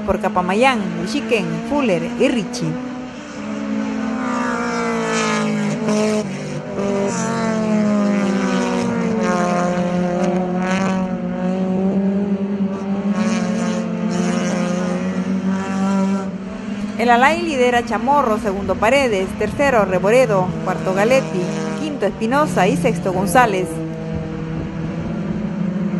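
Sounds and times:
race car engines passing: 0:00.0 - 0:25.9.

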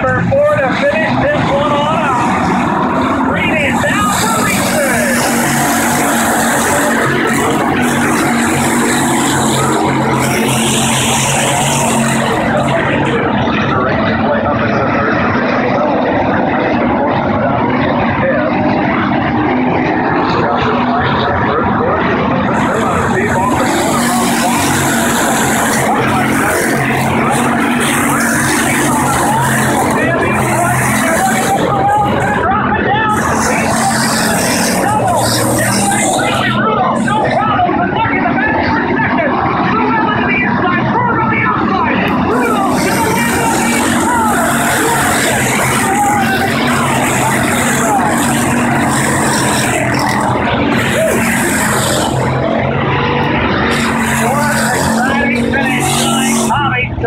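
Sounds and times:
race car engines roaring: 0:00.0 - 0:57.0.

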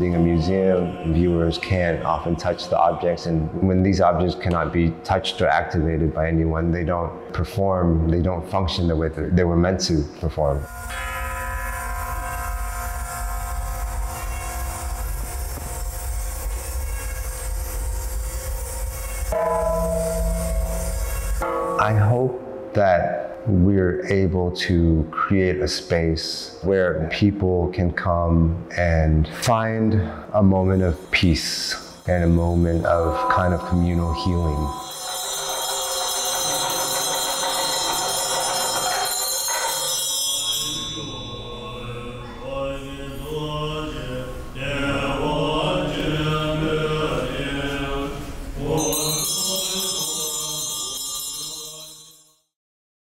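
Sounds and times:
metal sculpture struck like a gong: 0:10.6 - 0:22.8, 0:30.8 - 0:42.4
metal bells ringing: 0:19.2 - 0:22.5, 0:30.7 - 0:42.4, 0:48.7 - 0:52.4.

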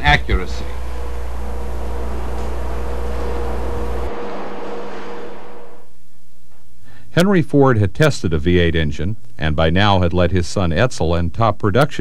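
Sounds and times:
faint held tone: 0:00.0 - 0:06.0
deep hum: 0:00.0 - 0:06.8.

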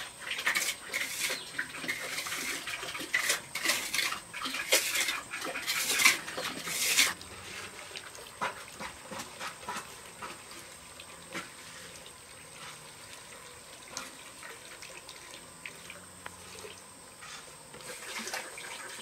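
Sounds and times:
trowel scraping wet cement: 0:00.0 - 0:10.4.

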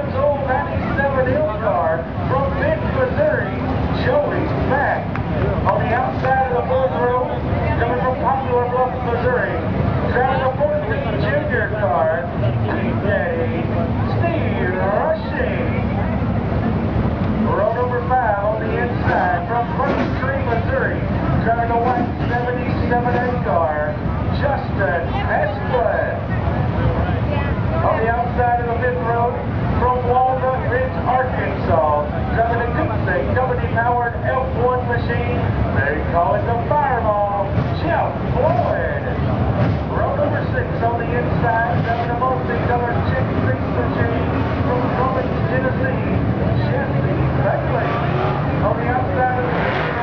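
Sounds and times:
people talking: 0:00.0 - 0:16.8, 0:17.4 - 0:50.0
race cars rumbling around track: 0:00.0 - 0:50.0
voices: 0:00.0 - 0:50.0.

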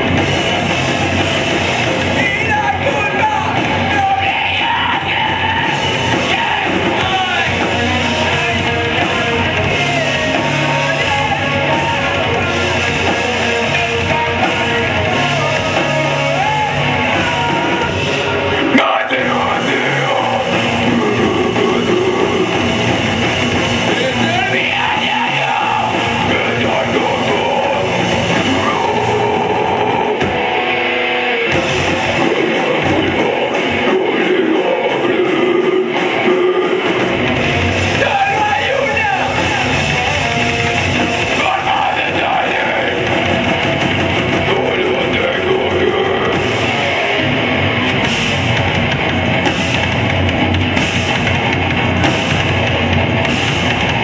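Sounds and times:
drum kit: 0:00.0 - 0:54.0
electric guitar: 0:00.0 - 0:54.0.

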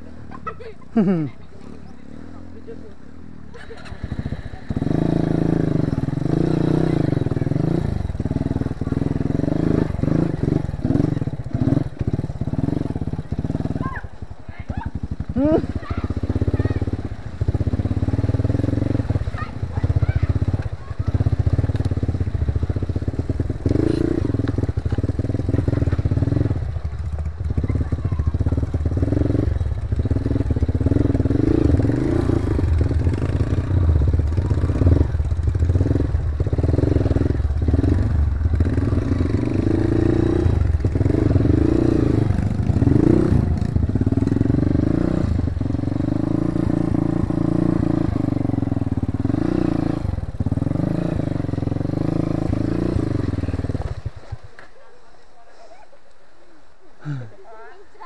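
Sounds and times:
dirt bike engine revving: 0:02.1 - 0:54.4.

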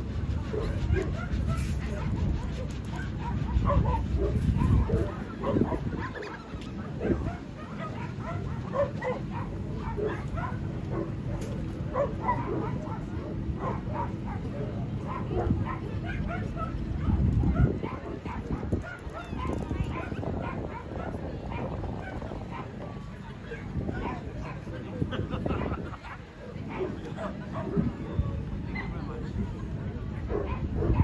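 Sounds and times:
dogs barking and yapping: 0:00.0 - 0:29.4, 0:30.1 - 0:31.0.

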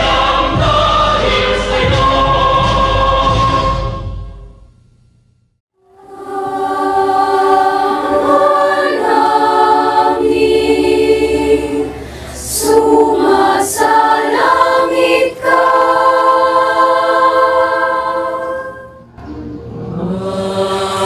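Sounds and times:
women's choir singing unaccompanied: 0:00.0 - 0:03.9, 0:05.8 - 0:19.0, 0:19.8 - 0:21.0.

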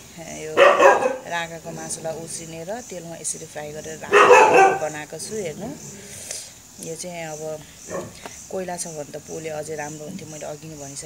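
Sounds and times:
insects chirping: 0:00.0 - 0:11.0
dog barking: 0:00.6 - 0:01.3, 0:04.0 - 0:05.0.

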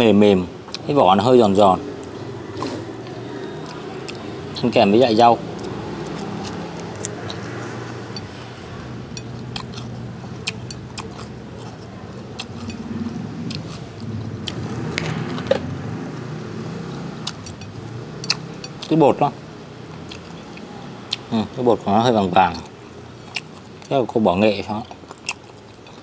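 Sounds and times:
vehicle engine humming: 0:00.0 - 0:26.0.

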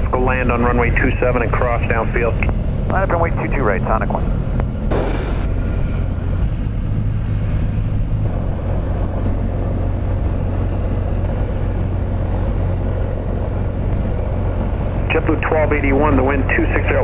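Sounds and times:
propeller engine low drone: 0:00.0 - 0:17.0.

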